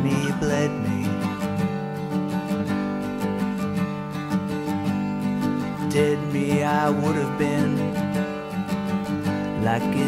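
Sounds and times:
strummed guitar chords: 0.0s - 10.0s.

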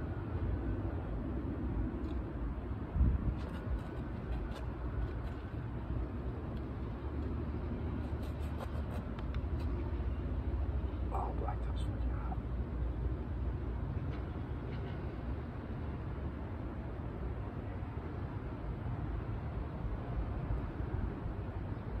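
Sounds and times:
distant traffic rumble: 0.0s - 22.0s.

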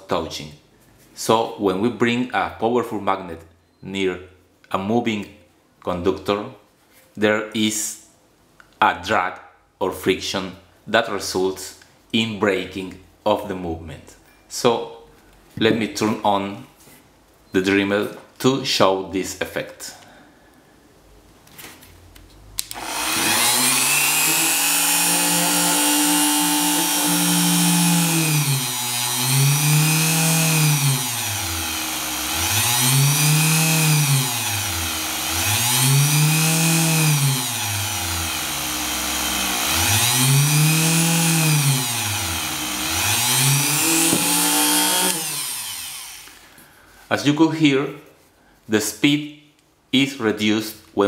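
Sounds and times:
rotary tool motor whine: 22.7s - 46.4s.

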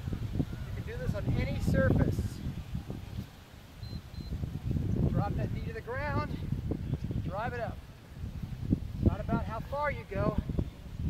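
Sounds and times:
wind rumbling on microphone: 0.0s - 11.0s
short high electronic beeps: 3.8s - 4.4s.

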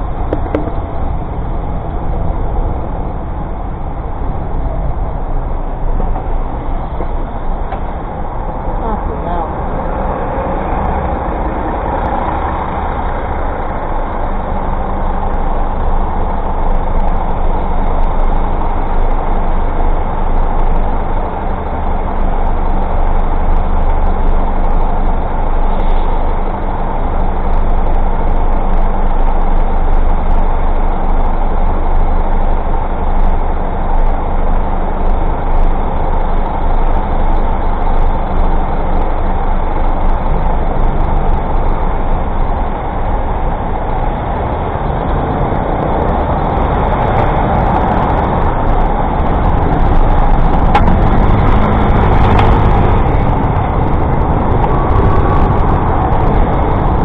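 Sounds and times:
city traffic noise: 0.0s - 57.0s
delivery van engine: 0.0s - 57.0s
diesel bus engine: 0.0s - 57.0s.

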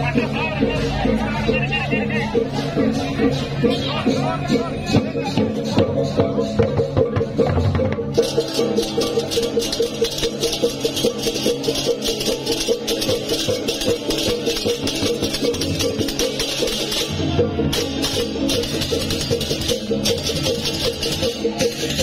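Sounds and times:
cymbals clashing: 0.0s - 22.0s
gong and drum: 0.0s - 22.0s
metallic gamelan notes: 0.0s - 22.0s.

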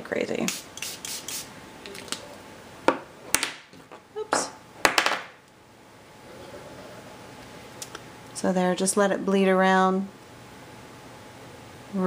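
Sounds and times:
spray bottle hissing: 0.5s - 1.5s.

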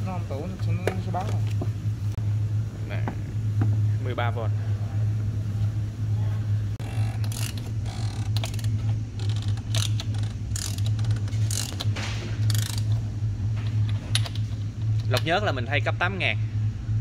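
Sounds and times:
steady low hum: 0.0s - 17.0s
ratchet wrench clicking: 6.8s - 13.0s, 13.8s - 15.3s.

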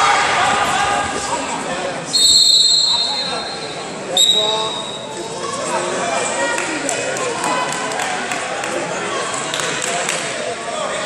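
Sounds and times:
voices in hall: 0.0s - 11.0s
referee's whistle blast: 2.1s - 5.0s.

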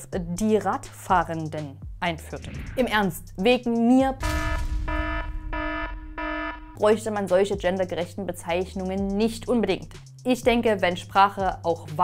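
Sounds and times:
electronic alarm buzzer beeping: 4.2s - 6.8s.

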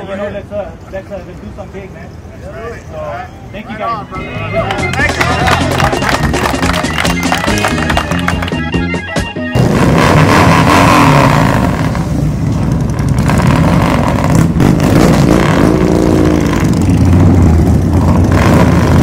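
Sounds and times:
background music: 3.9s - 9.6s
motorcycle engines revving: 9.5s - 19.0s.

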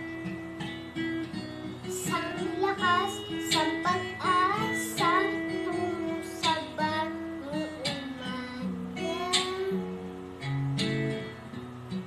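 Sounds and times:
acoustic guitar: 0.0s - 12.0s
boy singing: 1.9s - 10.1s.

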